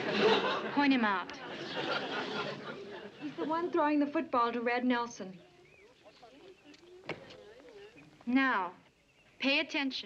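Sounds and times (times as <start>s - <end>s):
faint background voices: 0.4s - 9.4s.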